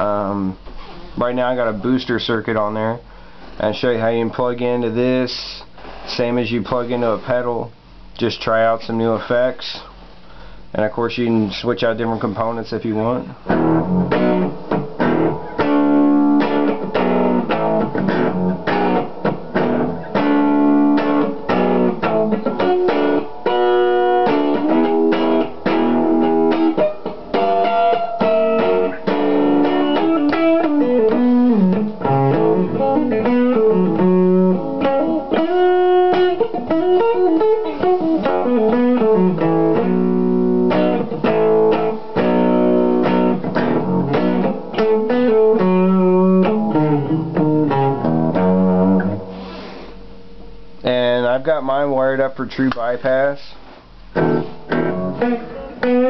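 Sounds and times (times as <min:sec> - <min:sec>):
electric guitar notes and chords: 0:13.4 - 0:50.9, 0:54.1 - 0:56.0.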